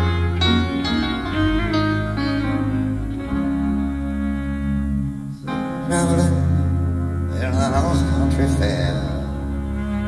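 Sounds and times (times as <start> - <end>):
held chord: 0.0 - 10.0
plucked guitar notes: 0.0 - 10.0
steady bass: 0.0 - 10.0.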